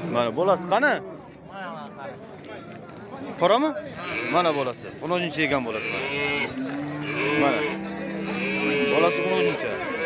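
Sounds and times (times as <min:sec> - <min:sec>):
people talking: 0:00.1 - 0:10.0.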